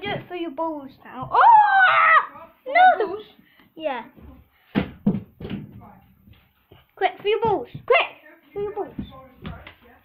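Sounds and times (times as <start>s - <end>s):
children shouting and talking: 0.0s - 4.2s
plastic bottle thudding on carpet: 4.7s - 5.8s.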